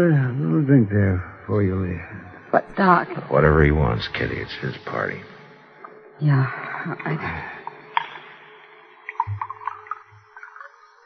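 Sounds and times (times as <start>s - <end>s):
liquid glugging into glass: 9.0s - 10.7s.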